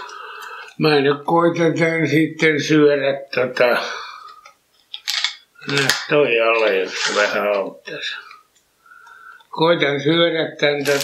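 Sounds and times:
plastic bag crinkling: 4.9s - 7.7s, 10.7s - 11.0s.

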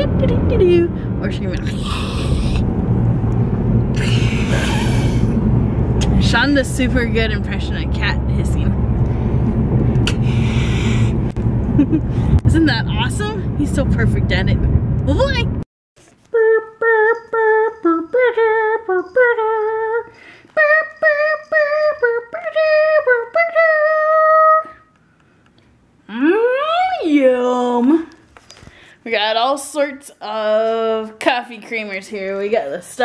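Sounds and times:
car road rumble: 0.0s - 15.6s
man imitating cat hiss: 1.8s - 2.6s, 4.0s - 5.4s, 10.1s - 11.2s
high voice singing a held note: 16.3s - 24.8s.

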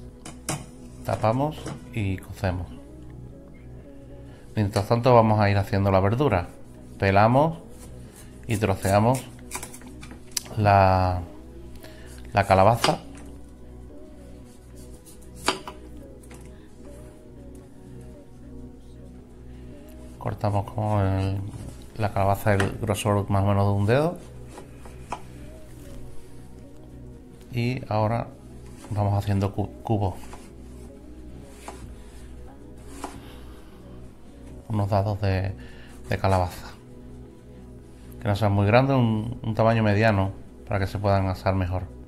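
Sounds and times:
faint background music: 0.0s - 42.0s.

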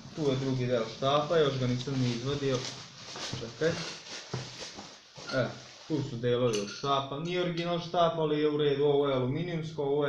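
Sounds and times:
bubble wrap crinkling: 0.1s - 5.9s.

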